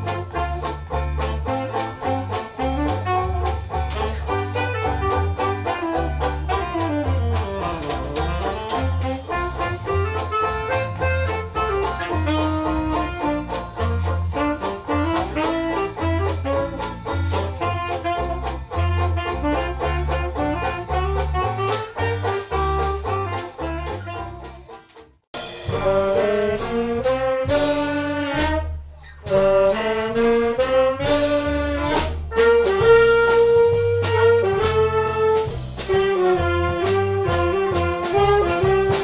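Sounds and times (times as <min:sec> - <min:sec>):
jazz band playing swing: 0:00.0 - 0:39.0.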